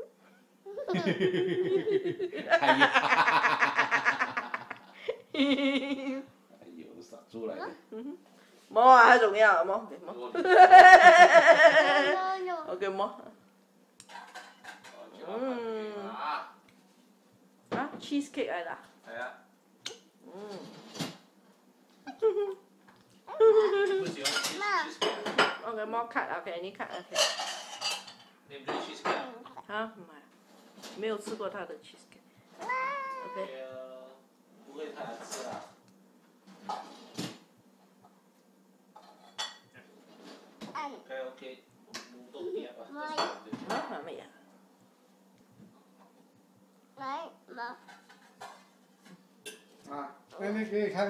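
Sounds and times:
child vocalising: 0.7 - 1.2, 32.6 - 33.5
cutlery clink: 14.0 - 15.0, 27.0 - 28.9.

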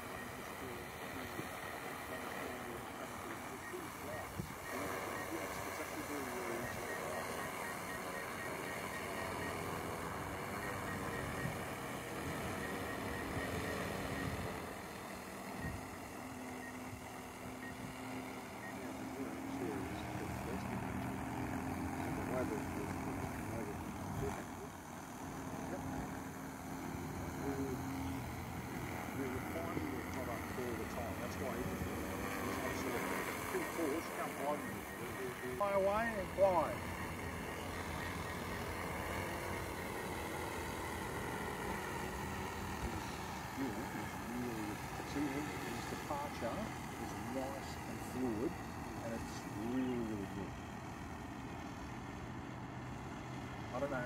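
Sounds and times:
drone propellers buzzing: 0.0 - 54.0.

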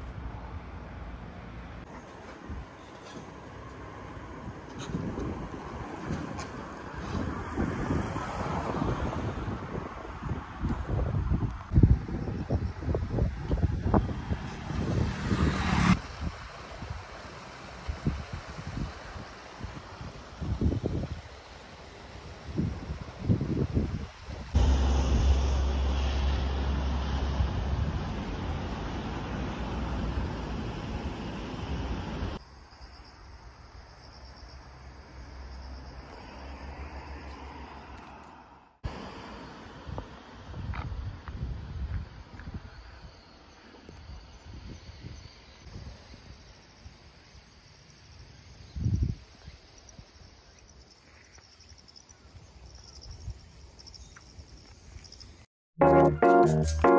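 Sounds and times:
low rumble of wind: 0.0 - 33.9, 36.7 - 47.2
wind buffeting microphone: 4.2 - 17.1, 17.8 - 21.4, 22.3 - 24.7, 40.5 - 43.0.

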